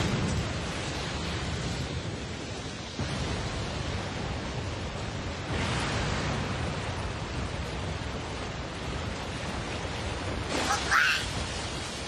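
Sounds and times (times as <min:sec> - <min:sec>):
rushing rumble of smoke cloud: 0:00.0 - 0:12.0.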